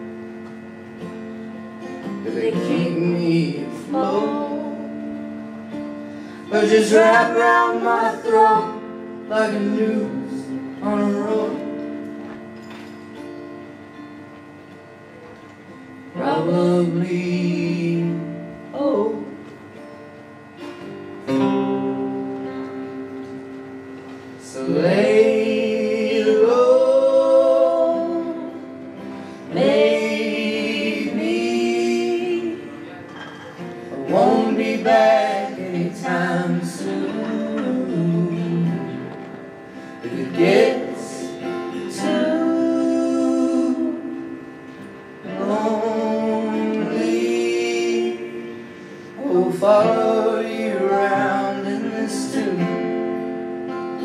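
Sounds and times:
guitar chords ringing: 0:00.0 - 0:54.0
voices singing: 0:06.5 - 0:11.8, 0:24.4 - 0:33.0, 0:34.0 - 0:44.4, 0:45.2 - 0:53.4.

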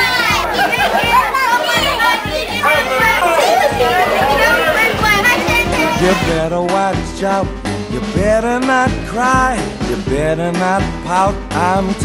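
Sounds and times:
children talking and calling out: 0:00.0 - 0:06.5
music playing: 0:00.0 - 0:12.0.

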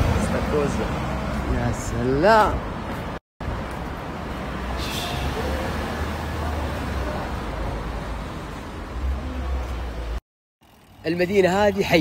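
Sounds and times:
street traffic noise: 0:00.0 - 0:12.0
faint voices of passers-by: 0:04.8 - 0:10.8.

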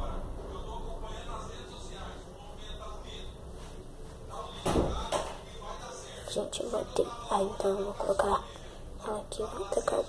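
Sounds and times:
loud thump: 0:04.6 - 0:05.1.

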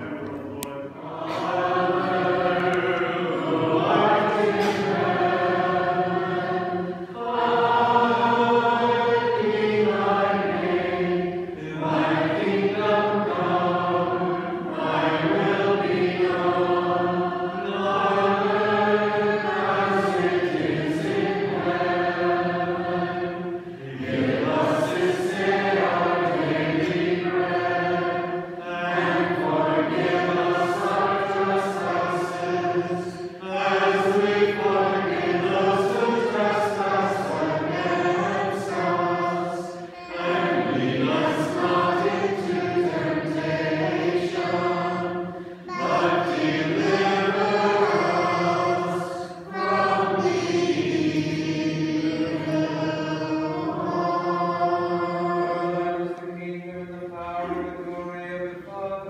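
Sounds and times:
choir singing unaccompanied chant: 0:00.0 - 0:59.0.

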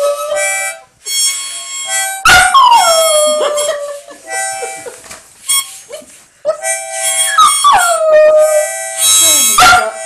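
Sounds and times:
harmonica: 0:00.0 - 0:10.0.

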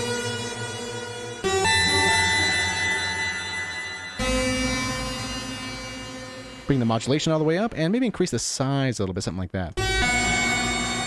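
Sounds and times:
dissonant synthesizer chords: 0:00.0 - 0:07.7, 0:09.8 - 0:11.0.

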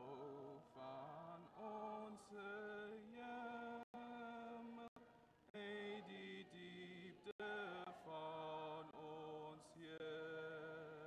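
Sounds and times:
choir singing long notes: 0:00.0 - 0:03.8, 0:05.6 - 0:11.0.

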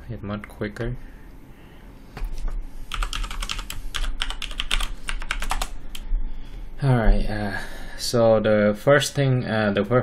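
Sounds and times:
computer keyboard typing: 0:02.9 - 0:06.0.

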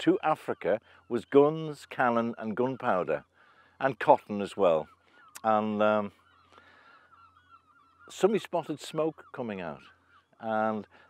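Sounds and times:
faint bird calls: 0:00.0 - 0:11.0.

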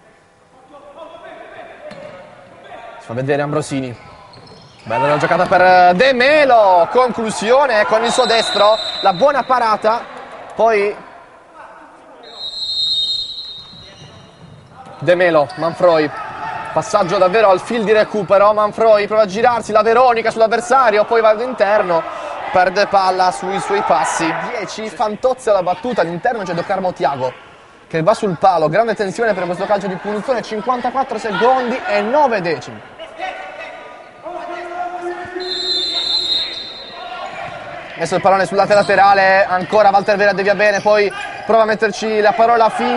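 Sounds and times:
referee's whistle blast: 0:08.1 - 0:09.7, 0:12.2 - 0:14.4, 0:35.4 - 0:37.4.

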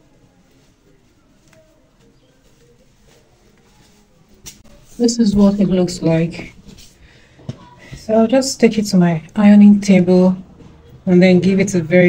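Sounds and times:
fabric rustling: 0:00.0 - 0:11.6.

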